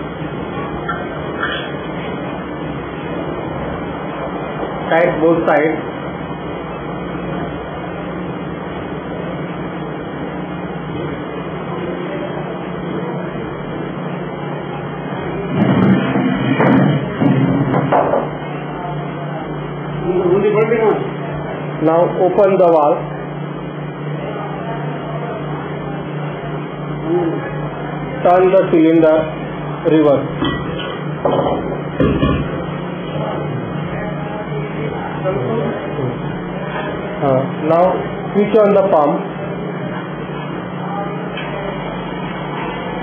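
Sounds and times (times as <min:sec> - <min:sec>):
steady background hum: 0:00.0 - 0:43.0.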